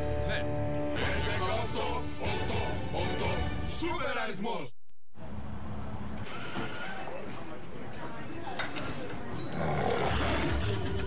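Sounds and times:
big cat roaring: 0:09.5 - 0:10.6.

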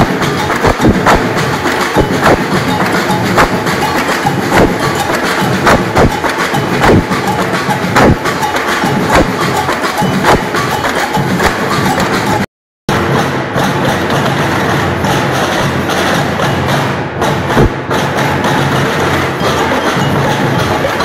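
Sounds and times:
snare drum: 0:00.0 - 0:21.0.

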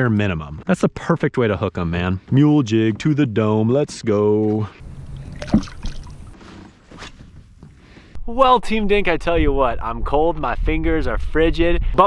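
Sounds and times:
faint water sloshing: 0:04.8 - 0:06.8.

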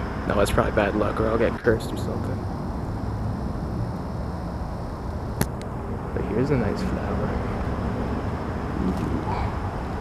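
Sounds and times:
low outdoor rumble: 0:00.0 - 0:10.0
sharp click: 0:05.4 - 0:05.7.

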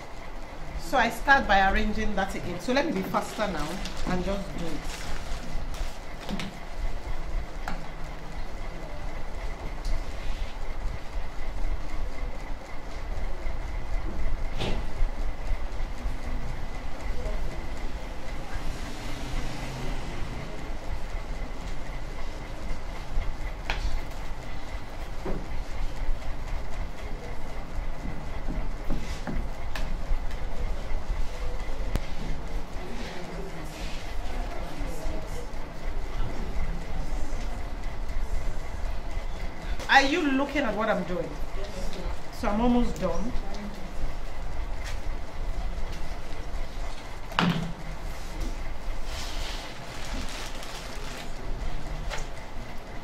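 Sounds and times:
mechanical hum and rumble: 0:00.0 - 0:53.0
paper clicks and rustles: 0:03.5 - 0:06.5, 0:49.2 - 0:52.4.

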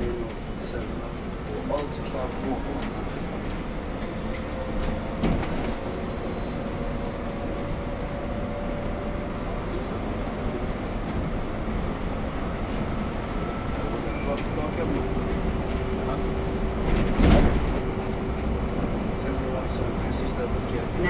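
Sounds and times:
bus cabin rumble: 0:00.0 - 0:21.0.

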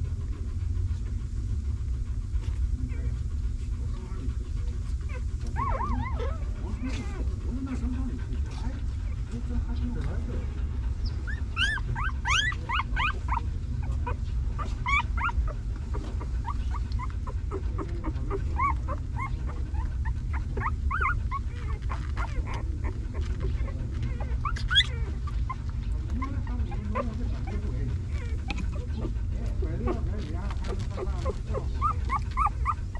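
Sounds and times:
steady low rumble: 0:00.0 - 0:32.9
puppies whimpering and squeaking: 0:03.8 - 0:09.3, 0:10.8 - 0:32.9.

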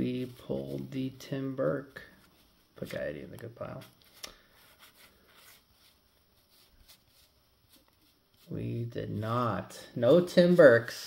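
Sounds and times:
trading cards flipped by hand: 0:02.3 - 0:08.5.

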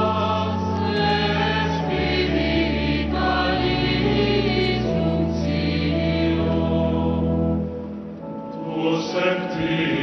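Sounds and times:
choir singing chant: 0:00.0 - 0:07.6, 0:08.6 - 0:10.0
low steady accompaniment: 0:00.0 - 0:10.0.

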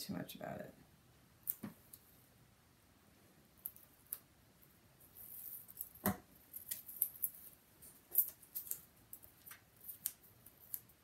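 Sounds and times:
paper and tape crinkling: 0:05.2 - 0:11.0.

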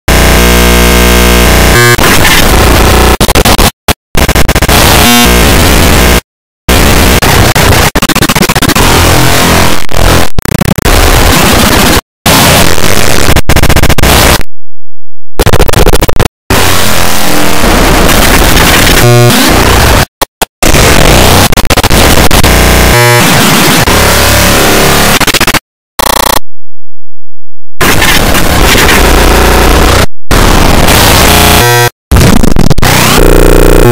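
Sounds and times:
harsh distorted noise: 0:00.1 - 0:14.5, 0:15.4 - 0:26.5, 0:27.8 - 0:33.9.

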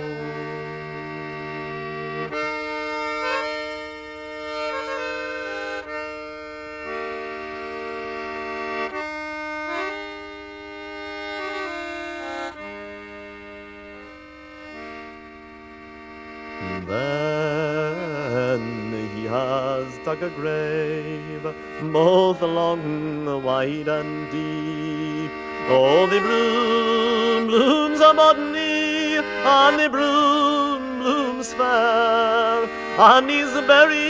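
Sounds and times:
reedy folk melody over drone: 0:00.0 - 0:34.0.

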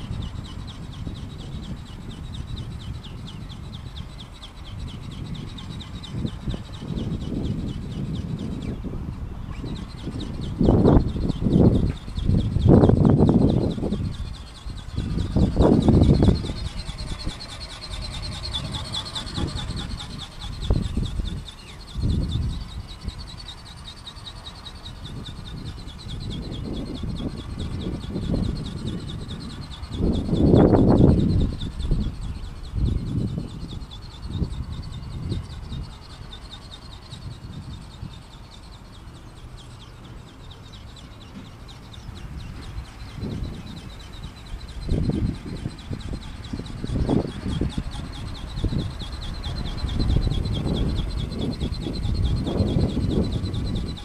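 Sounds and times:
model airplane motor whine: 0:00.0 - 0:54.0
wind buffeting microphone: 0:00.0 - 0:54.0.

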